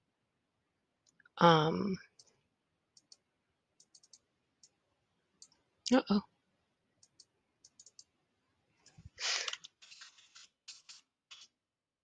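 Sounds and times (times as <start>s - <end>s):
mouse clicks: 2.9s - 3.2s, 3.8s - 4.8s, 7.0s - 8.1s
keyboard keystrokes: 3.8s - 4.8s, 7.0s - 8.1s.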